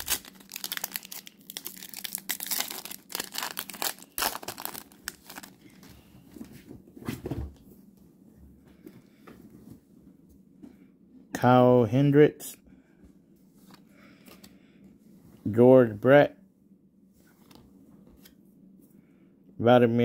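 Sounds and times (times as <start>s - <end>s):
wrapper crinkling and tearing: 0.0s - 5.8s.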